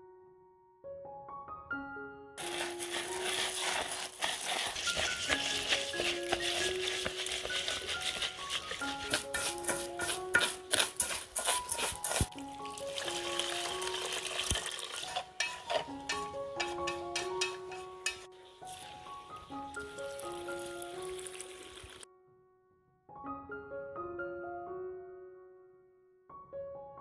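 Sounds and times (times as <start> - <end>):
piano music: 0.0 - 27.0
rice grains rustling in a pot: 2.4 - 22.0
chopsticks ticking against pot: 4.0 - 12.8, 13.4 - 18.3.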